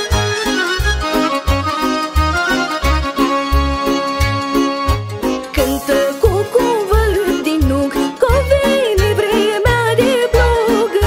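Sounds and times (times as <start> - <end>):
backing track with bass beat: 0.0 - 11.0
girl singing folk song: 5.6 - 11.0.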